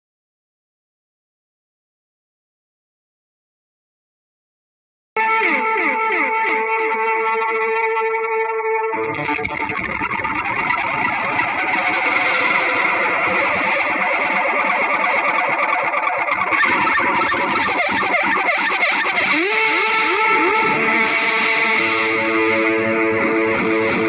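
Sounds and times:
electric guitar slides: 0:05.2 - 0:24.0
progressive rock band playing: 0:08.9 - 0:24.0.

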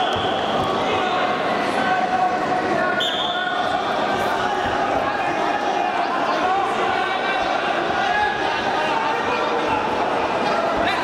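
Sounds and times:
crowd chatter and shouting: 0:00.0 - 0:11.0.

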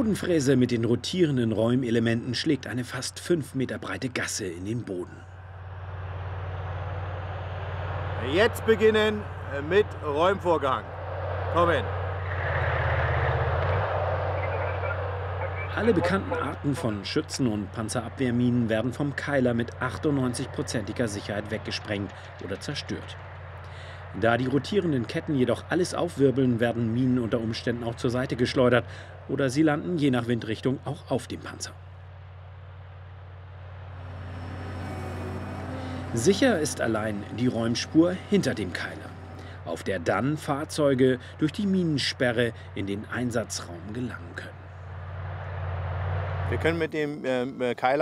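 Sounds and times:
tank engine low drone: 0:00.0 - 0:47.0.

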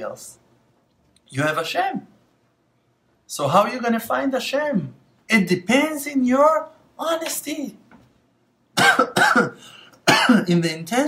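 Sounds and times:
man coughing: 0:08.8 - 0:10.5.

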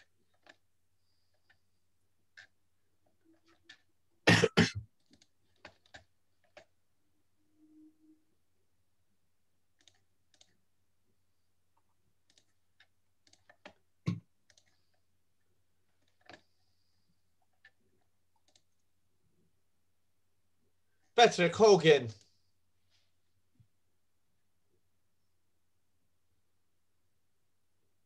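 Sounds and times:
mouse and keyboard clicks: 0:09.8 - 0:10.5, 0:12.2 - 0:14.8, 0:16.0 - 0:16.5.

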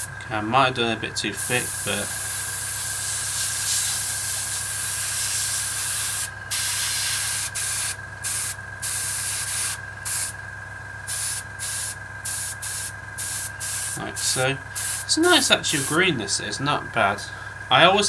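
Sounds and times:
airbrush hissing: 0:01.4 - 0:10.4, 0:11.1 - 0:16.1.

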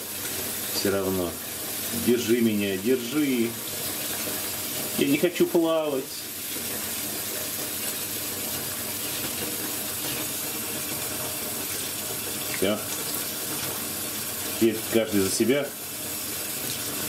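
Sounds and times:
tap water running into bathtub: 0:00.0 - 0:17.0.

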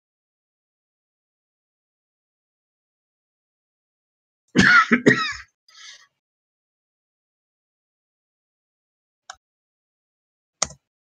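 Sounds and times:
person coughing: 0:04.6 - 0:06.0.

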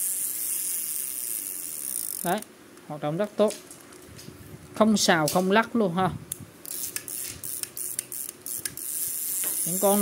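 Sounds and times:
fishing reel clicking: 0:00.0 - 0:02.5, 0:06.6 - 0:10.0.

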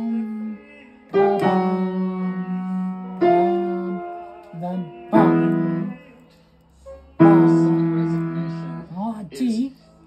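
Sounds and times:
piano chord ringing: 0:01.1 - 0:06.0, 0:06.9 - 0:09.0.

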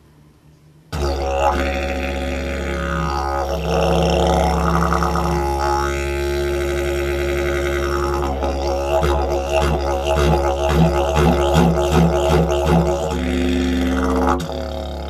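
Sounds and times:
didgeridoo drone: 0:00.9 - 0:15.0.

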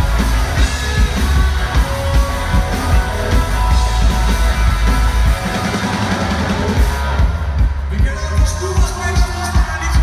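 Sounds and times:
electric guitars: 0:00.0 - 0:07.8
bass guitar: 0:00.0 - 0:10.0
drum kit: 0:00.0 - 0:10.0.

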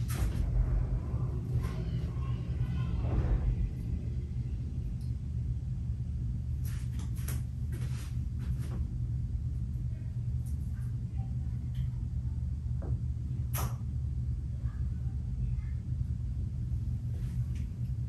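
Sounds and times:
steady low rumble: 0:00.0 - 0:18.0.

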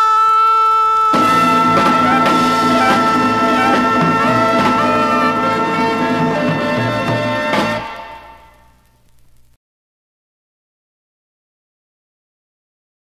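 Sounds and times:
jazz band final chord with brass: 0:01.1 - 0:08.7.

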